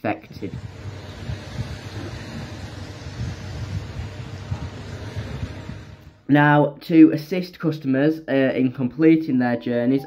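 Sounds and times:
wind on microphone: 0.2s - 6.3s.

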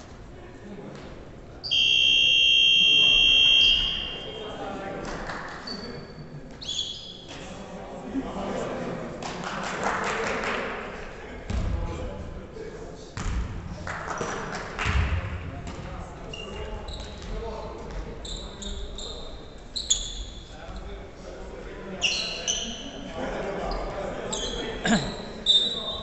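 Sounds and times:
players' voices echoing: 0.2s - 19.7s, 20.4s - 26.0s
sneaker squeaks: 5.6s - 7.4s, 16.3s - 17.4s, 18.2s - 20.9s, 22.0s - 23.1s, 23.7s - 26.0s.

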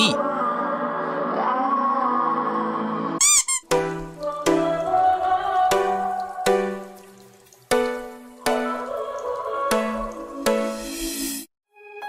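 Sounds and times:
squeaky cartoon sound effects: 3.2s - 3.8s.

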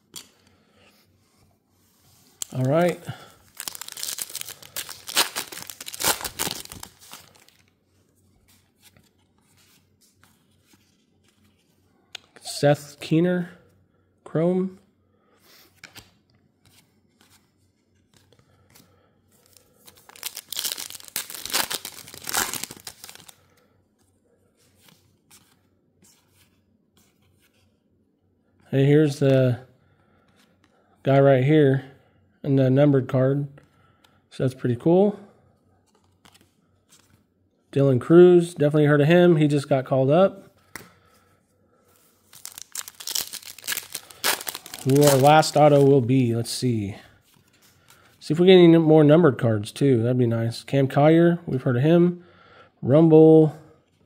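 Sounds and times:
cards and wrapper handling: 2.4s - 7.7s, 18.1s - 23.6s, 42.0s - 46.1s
foil wrapper tearing: 3.5s - 7.5s, 20.0s - 23.3s, 42.4s - 45.4s.

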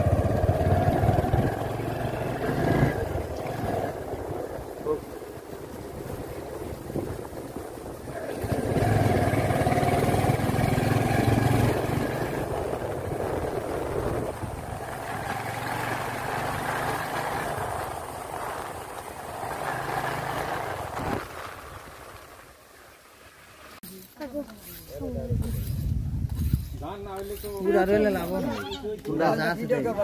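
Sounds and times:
motorcycle engine running: 0.0s - 22.1s.

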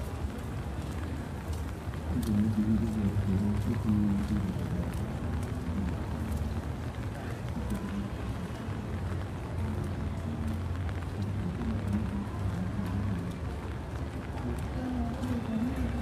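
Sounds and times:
city street hum: 0.0s - 16.0s
indistinct voices: 1.0s - 16.0s.

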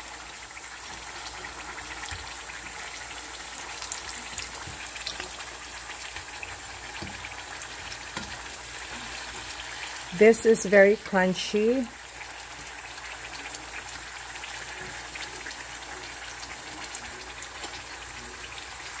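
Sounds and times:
potato slices sizzling in oil: 0.0s - 19.0s.

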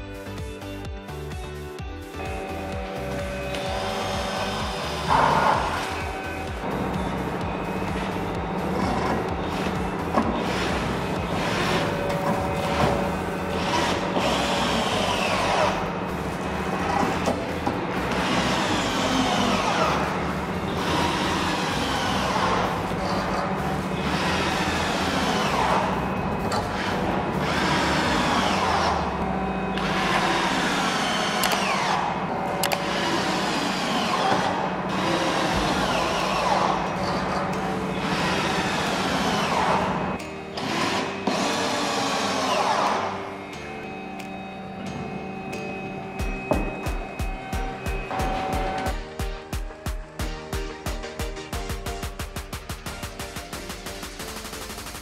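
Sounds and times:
background music: 0.0s - 55.0s
cordless drill driving screws: 29.8s - 37.2s.

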